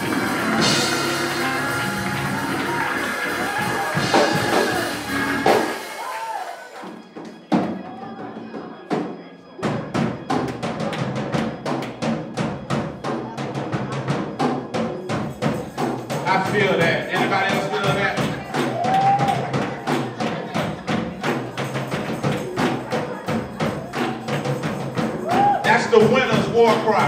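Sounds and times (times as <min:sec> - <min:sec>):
drum kit hits: 0:00.0 - 0:06.4
drum kit steady beat: 0:00.0 - 0:06.8, 0:09.6 - 0:27.0
band music: 0:00.0 - 0:07.0, 0:15.0 - 0:27.0.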